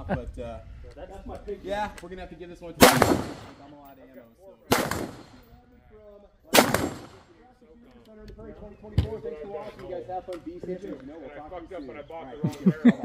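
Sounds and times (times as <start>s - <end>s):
gunshots: 2.8s - 3.7s, 4.7s - 5.5s, 6.5s - 7.3s.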